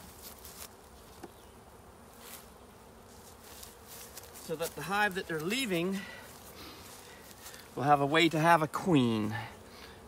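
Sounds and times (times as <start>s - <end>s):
honeybees buzzing faintly: 0.0s - 10.0s.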